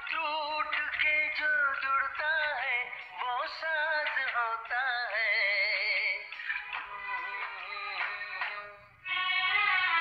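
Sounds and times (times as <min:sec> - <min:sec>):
person singing slow melody: 0:00.0 - 0:10.0.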